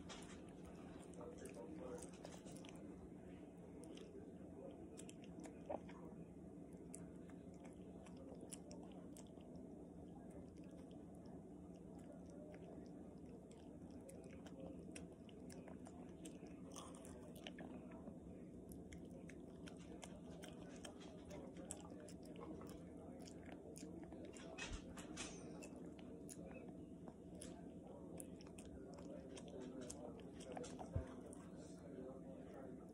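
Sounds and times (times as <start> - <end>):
dog chewing and licking wet food: 0.0 - 32.9.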